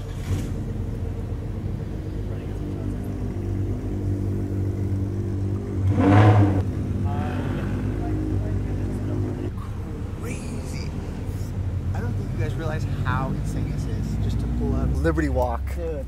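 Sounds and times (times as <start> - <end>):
car engine running at low speed: 0.0 - 16.0.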